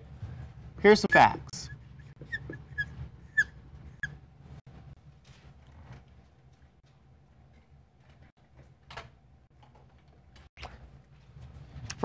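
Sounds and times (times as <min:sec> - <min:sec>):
marker squeaking on whiteboard: 0:00.9 - 0:04.2.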